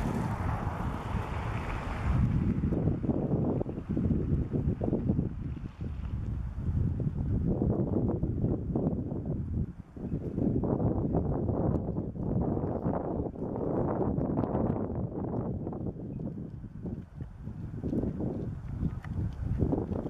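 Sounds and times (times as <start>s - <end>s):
wind buffeting microphone: 0.0s - 20.0s.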